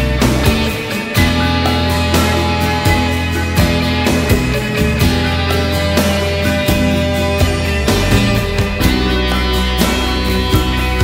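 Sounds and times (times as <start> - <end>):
bass guitar: 0.0 - 11.0
electric guitar: 0.0 - 11.0
steady drum beat: 0.0 - 11.0.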